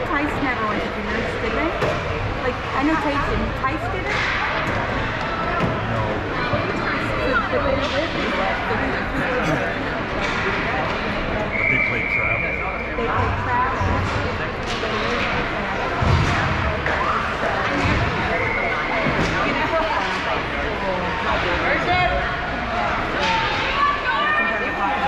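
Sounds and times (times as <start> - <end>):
indistinct voices in an ice rink: 0.0 - 25.0
clacks of hockey sticks and puck: 4.0 - 5.8, 13.8 - 18.4, 19.0 - 20.5.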